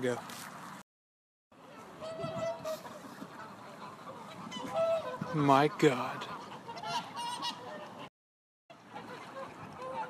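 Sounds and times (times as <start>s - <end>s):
geese and swans honking: 1.6s - 8.1s, 8.7s - 10.0s.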